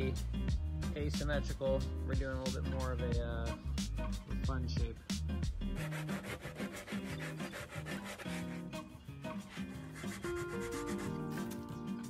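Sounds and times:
background music: 0:00.0 - 0:12.0
sandpaper rubbing on wood: 0:05.8 - 0:11.6.

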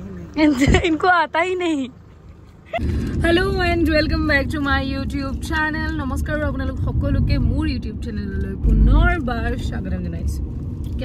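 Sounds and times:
woman talking: 0:00.0 - 0:02.0, 0:03.2 - 0:10.4
car road rumble: 0:00.0 - 0:11.0
deep rumble: 0:02.7 - 0:11.0.

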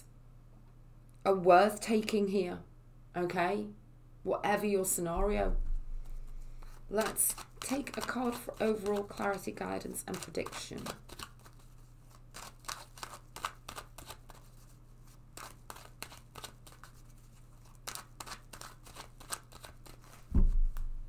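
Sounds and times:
loud low thump: 0:05.2 - 0:06.0, 0:20.3 - 0:21.0
cards being shuffled: 0:05.7 - 0:21.0.

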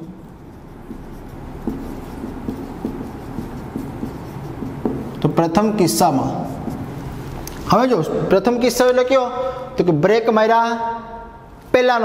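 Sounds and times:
low room hum: 0:00.0 - 0:10.1
marker knocking on whiteboard: 0:00.8 - 0:05.6.

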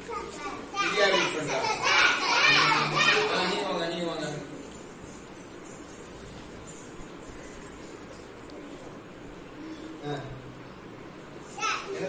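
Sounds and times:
children calling out together: 0:00.2 - 0:03.6.

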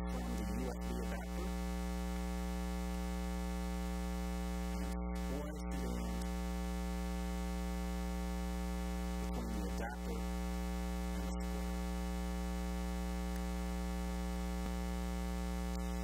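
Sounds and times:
electrical mains hum: 0:00.0 - 0:16.0
faint clicks: 0:13.3 - 0:13.5.

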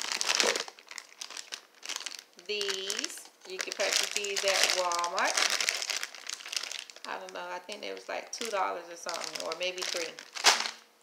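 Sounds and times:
plastic bag crinkling: 0:00.0 - 0:10.9.

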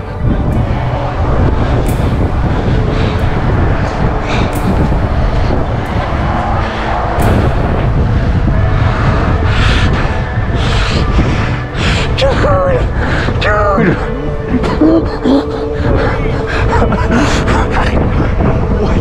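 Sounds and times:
wind rumble on microphone: 0:00.0 - 0:19.0.

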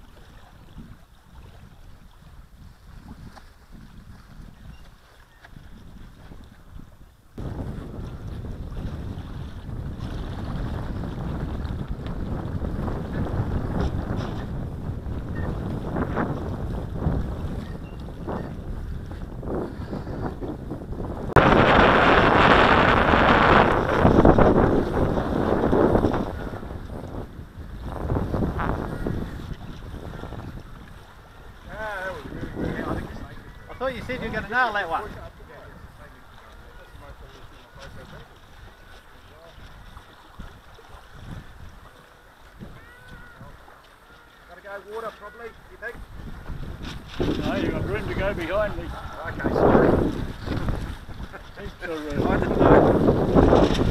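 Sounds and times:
wind buffeting microphone: 0:00.0 - 0:43.8, 0:44.6 - 0:53.9.

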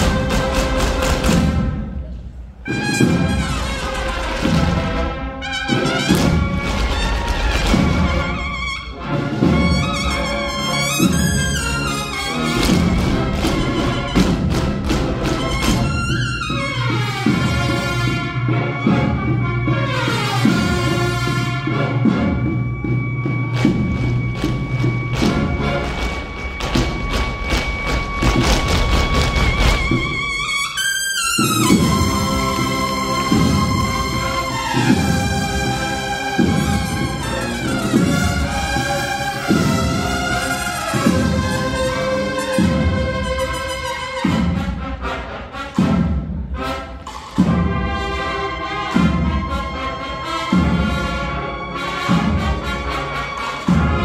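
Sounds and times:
cornet and drum band march: 0:00.0 - 0:54.0
drum strokes: 0:00.0 - 0:54.0.

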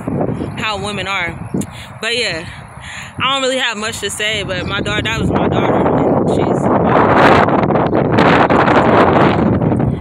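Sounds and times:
wind blowing across microphone: 0:00.0 - 0:10.0.

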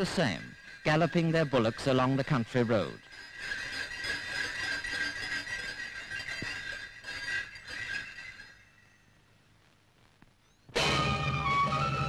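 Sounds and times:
carts jingling and clattering: 0:00.0 - 0:08.8.

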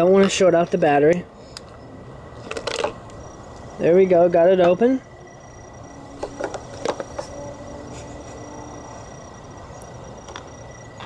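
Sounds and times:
thin high-pitched tone: 0:04.8 - 0:11.0.

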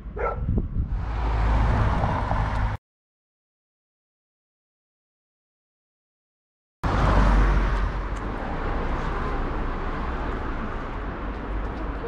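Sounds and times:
street traffic: 0:00.0 - 0:02.8, 0:06.8 - 0:12.0.

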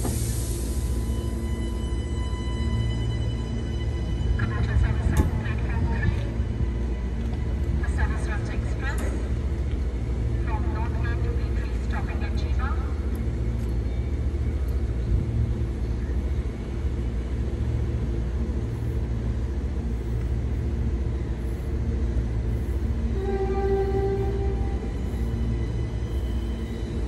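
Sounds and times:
electric train humming: 0:00.0 - 0:27.0.

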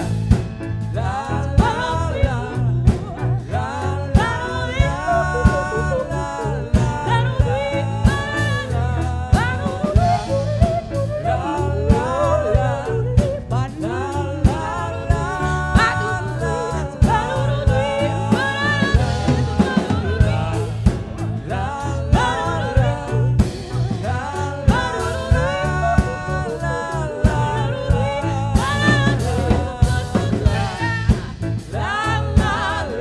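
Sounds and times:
drum kit: 0:00.0 - 0:33.0
electric bass guitar: 0:00.0 - 0:33.0
grand piano: 0:00.0 - 0:33.0
woman singing with vibrato: 0:00.9 - 0:33.0.

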